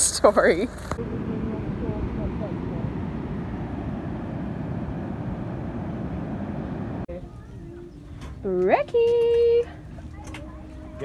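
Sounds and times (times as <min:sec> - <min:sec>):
wind: 0:00.0 - 0:11.0
surf at a beach: 0:00.1 - 0:07.3.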